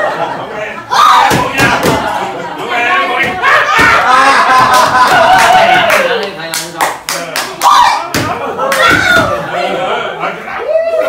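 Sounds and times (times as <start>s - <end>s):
hand claps: 4.7s - 9.0s.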